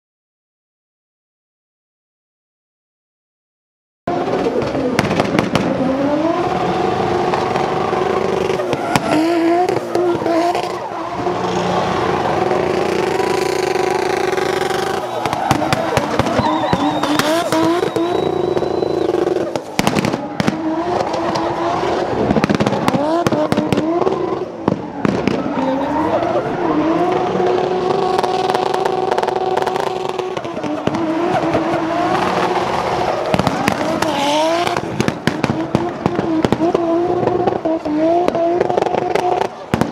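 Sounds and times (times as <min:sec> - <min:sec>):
car engine revving hard: 0:04.1 - 0:39.8
exhaust crackles and pops: 0:04.1 - 0:39.9.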